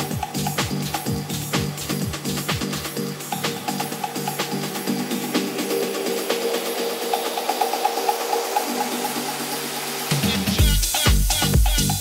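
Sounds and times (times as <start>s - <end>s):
house dance music: 0.0s - 12.0s.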